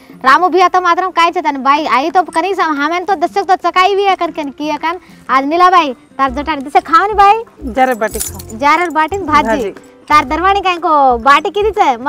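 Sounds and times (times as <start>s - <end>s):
women talking: 0.2s - 7.5s, 8.3s - 12.0s
metallic jingle: 7.6s - 10.2s.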